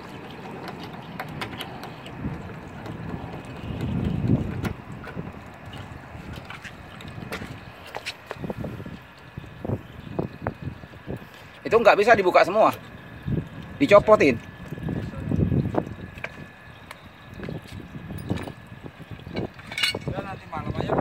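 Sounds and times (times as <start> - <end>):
wind on microphone: 0.0 - 12.2, 12.8 - 21.0.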